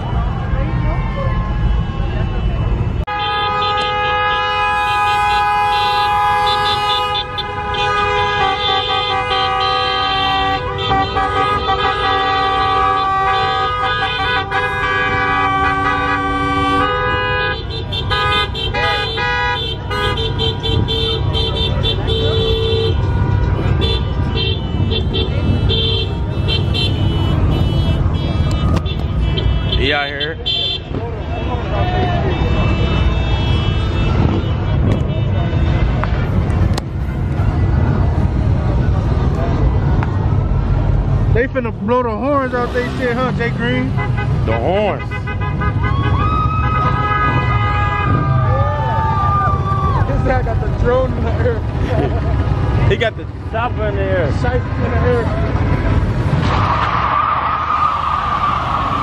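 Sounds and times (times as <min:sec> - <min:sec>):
engine and traffic rumble: 0:00.0 - 0:59.0
car horns honking: 0:01.8 - 0:38.0, 0:41.3 - 0:48.6.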